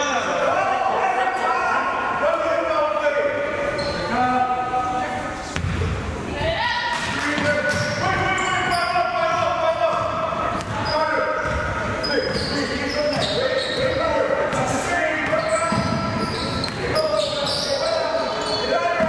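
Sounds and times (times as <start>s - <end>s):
echoing voices: 0.0s - 19.0s.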